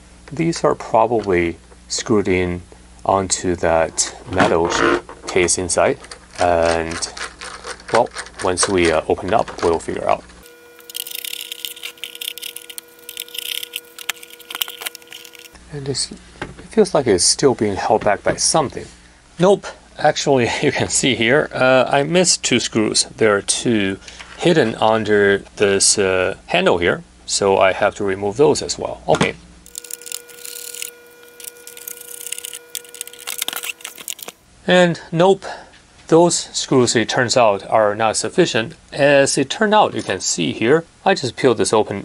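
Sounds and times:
screwdriver clicks and scrapes: 10.8 - 15.6, 29.7 - 34.4.

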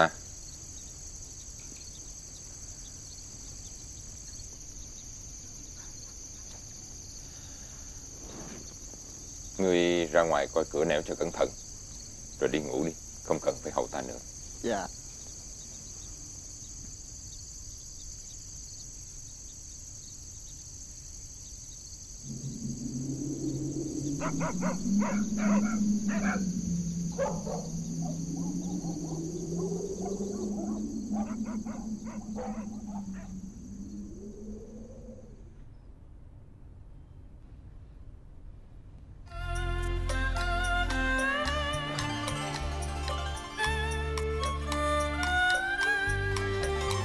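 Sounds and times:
crickets chirring: 0.0 - 36.0, 39.3 - 47.0
low-pitched pulsing sound: 22.2 - 35.5.

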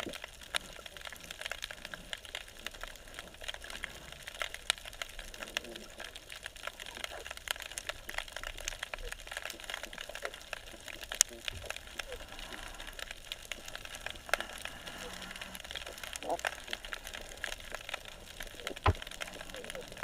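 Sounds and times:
underwater snapping shrimp clicks: 0.0 - 20.0.

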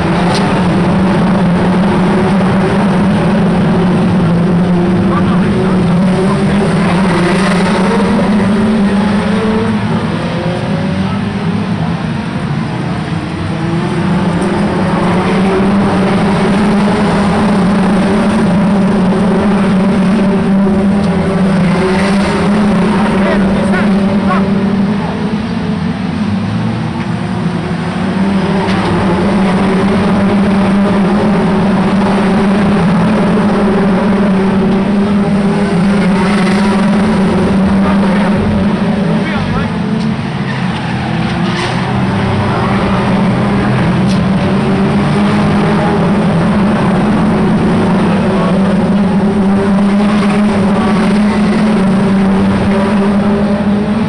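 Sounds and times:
race car engines running hard: 0.0 - 54.0.

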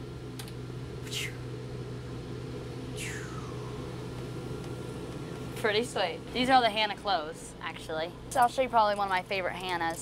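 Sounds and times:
bus low mechanical hum: 0.0 - 10.0.

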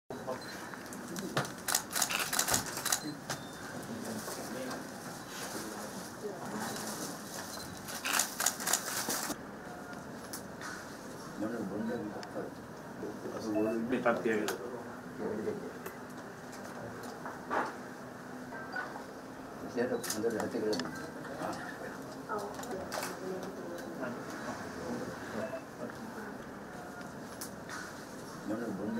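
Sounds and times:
camera shutter clicks: 1.6 - 3.0, 8.0 - 8.9.

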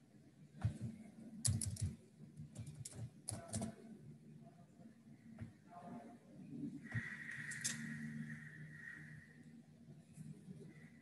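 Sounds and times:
computer keyboard typing: 0.7 - 3.8, 7.4 - 7.8.

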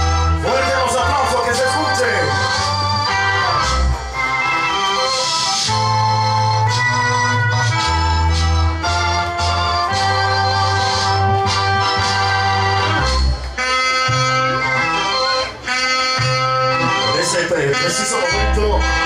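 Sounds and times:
bass line: 0.0 - 19.0
held chords: 0.0 - 19.0.

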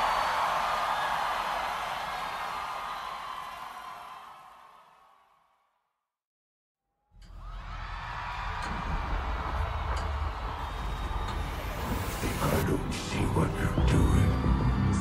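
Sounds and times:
crowd noise: 0.0 - 4.4.

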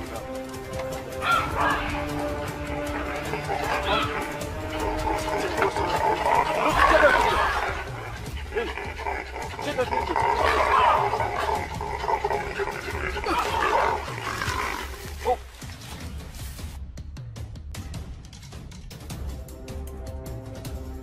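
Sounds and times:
monkey barking and screaming: 1.0 - 15.5.

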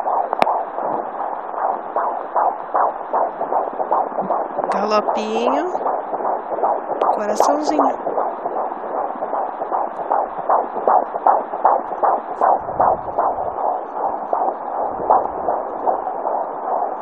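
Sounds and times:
fetal heartbeat whoosh on doppler: 0.0 - 17.0.

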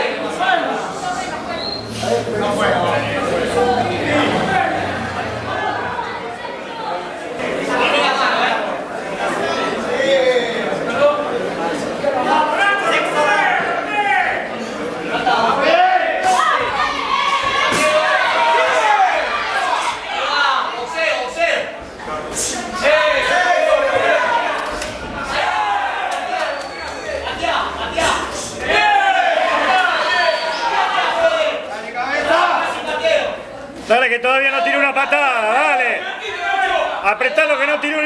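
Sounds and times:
crowd chatter: 0.0 - 38.0
men shouting in echoing hall: 2.1 - 6.1, 15.2 - 21.7, 22.5 - 33.5.

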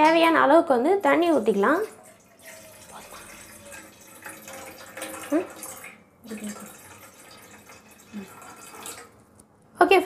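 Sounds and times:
water pouring into a metal pot: 1.0 - 9.2.

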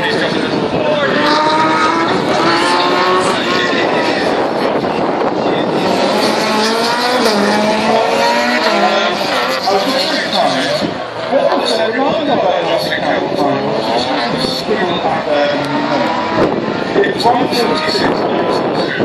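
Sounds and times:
rally car engine revving: 0.0 - 19.0.

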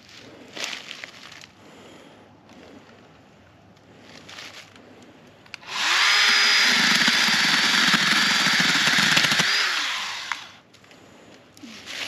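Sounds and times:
battery chainsaw whining: 5.6 - 10.6
chainsaw cutting brush crackling: 5.6 - 10.6.

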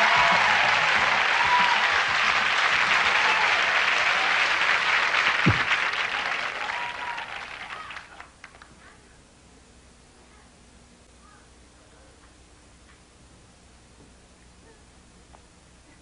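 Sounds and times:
audience applauding: 0.0 - 8.7
low thump: 5.4 - 5.7.

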